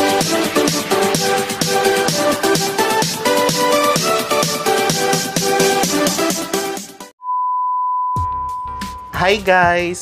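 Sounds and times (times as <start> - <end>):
music: 0.0 - 7.2, 8.2 - 10.0
steady electronic beep: 7.2 - 9.6.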